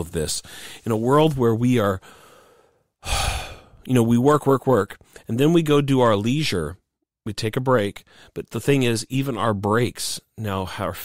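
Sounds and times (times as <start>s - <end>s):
man speaking: 0.0s - 2.0s, 3.1s - 11.0s
man breathing in: 0.4s - 0.8s, 2.0s - 3.8s.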